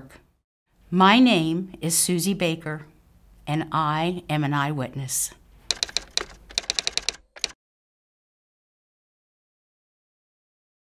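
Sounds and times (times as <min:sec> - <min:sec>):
typewriter keystrokes: 0:05.7 - 0:07.6.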